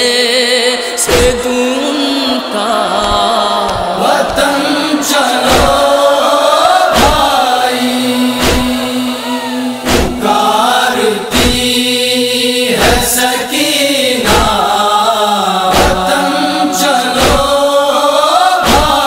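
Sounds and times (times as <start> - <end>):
steady held drone: 0.0 - 19.0
voices chanting mournful melody: 0.0 - 19.0
heavy beat: 1.0 - 10.6, 11.2 - 11.8, 15.7 - 17.6.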